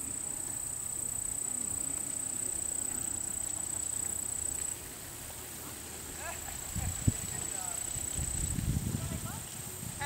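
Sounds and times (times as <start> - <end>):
high insect-like whine: 0.0 - 10.0.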